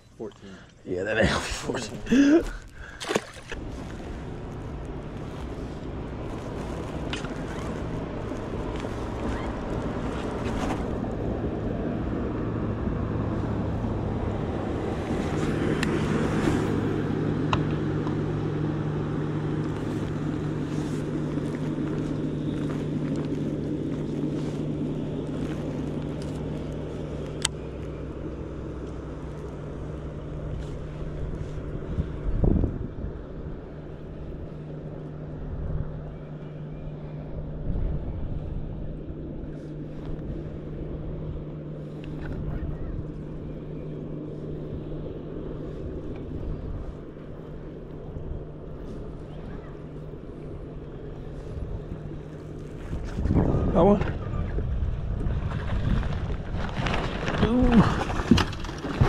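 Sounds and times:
electric trolling motor humming: 1.7 - 53.5
wind on microphone: 31.1 - 34.5, 51.0 - 58.4.

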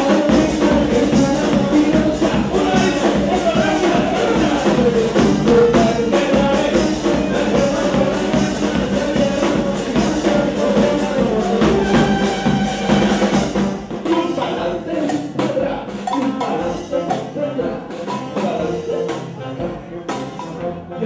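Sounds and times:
trumpets playing melody: 0.0 - 14.6
drums and percussion beat: 0.0 - 21.0.

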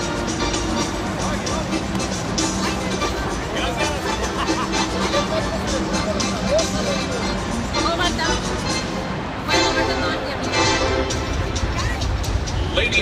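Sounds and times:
crowd hubbub: 0.0 - 13.0
music over pa system: 0.0 - 13.0
people talking nearby: 0.9 - 13.0.

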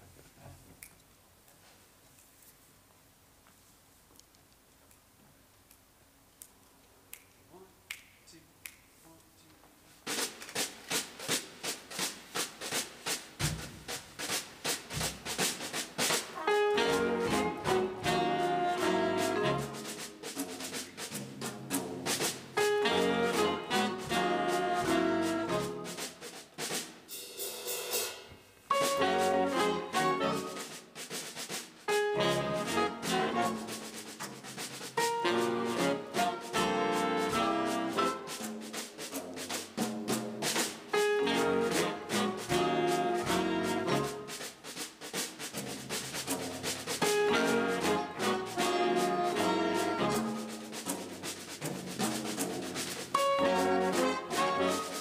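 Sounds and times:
drum kit played with brushes: 9.9 - 55.0
big band brass and saxophones: 11.2 - 55.0.

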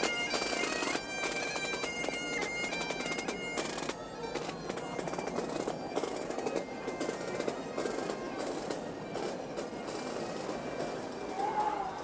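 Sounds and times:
crowd noise: 0.0 - 12.0
faint bagpipe notes: 0.0 - 12.0.

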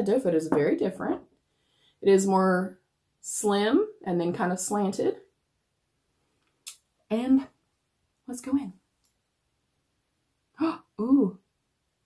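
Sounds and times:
woman speaking: 0.0 - 1.2, 2.0 - 5.3, 7.1 - 7.6, 8.3 - 8.8, 10.6 - 11.4.

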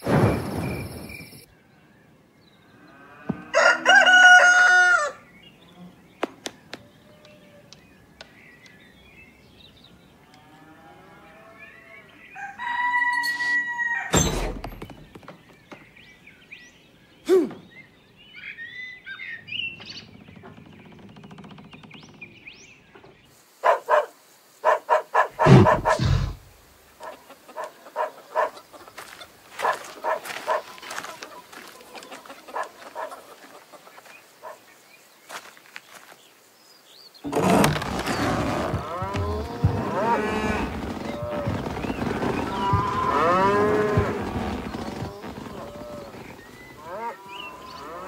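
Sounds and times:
heavy thumps: 25.4 - 26.5, 37.2 - 46.8.

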